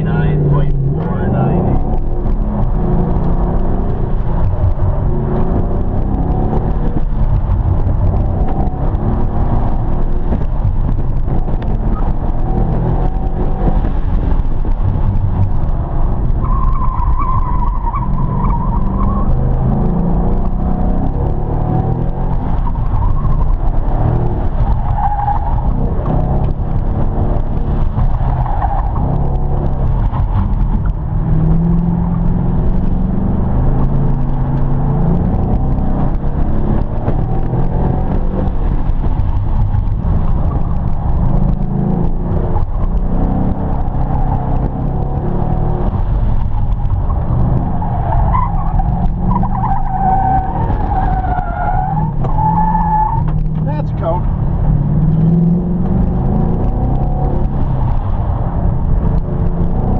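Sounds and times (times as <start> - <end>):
car engine revving: 0.0 - 59.9
tires squealing: 0.0 - 59.9.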